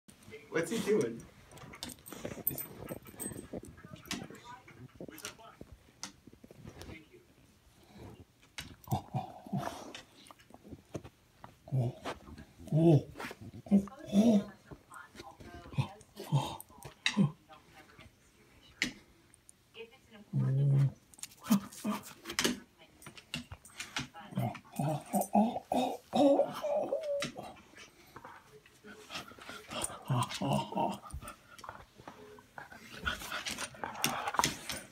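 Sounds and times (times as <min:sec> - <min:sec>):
dog sniffing and snuffling: 0:00.7 - 0:05.2
dog whimpering: 0:24.8 - 0:27.9.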